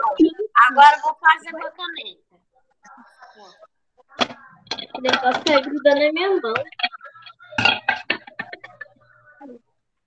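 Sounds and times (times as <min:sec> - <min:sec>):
broken voices over video call: 0:00.0 - 0:10.0.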